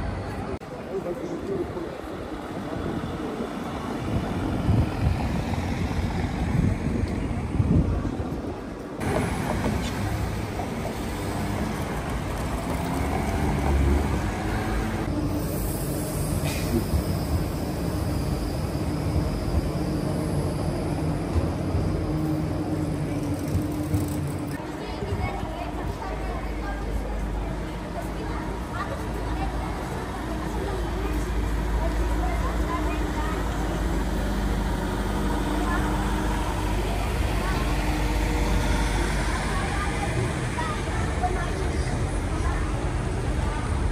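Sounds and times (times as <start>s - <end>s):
city street traffic rumble: 0.0s - 43.9s
people's voices: 0.0s - 43.9s
tram running on street tracks: 0.0s - 43.9s.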